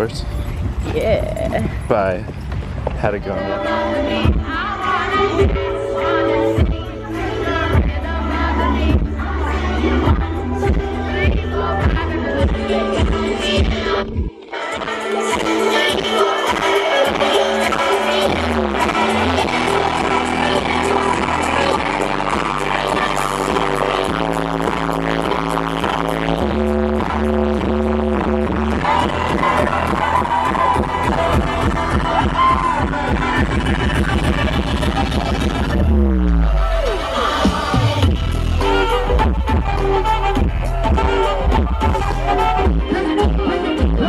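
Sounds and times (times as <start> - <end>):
loud electronic dance music: 3.1 - 44.0.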